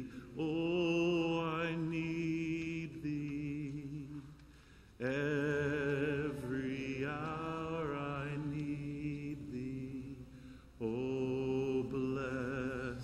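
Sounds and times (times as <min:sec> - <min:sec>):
man singing a hymn: 0:00.0 - 0:04.4, 0:05.0 - 0:13.0.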